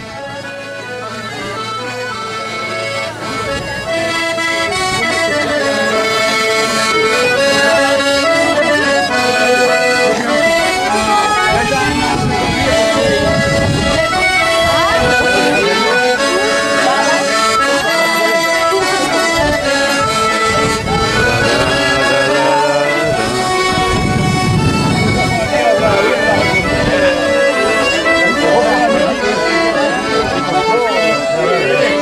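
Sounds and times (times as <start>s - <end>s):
button accordions playing: 0.0s - 32.0s
background voices: 20.8s - 23.7s.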